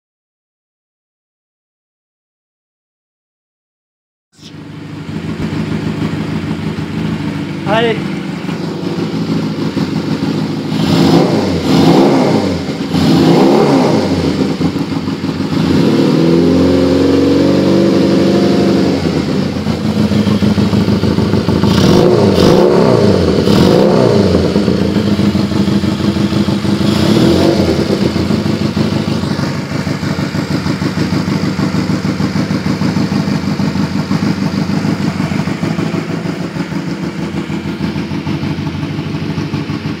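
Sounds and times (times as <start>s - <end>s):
motorcycle engine revving and idling: 4.4s - 40.0s.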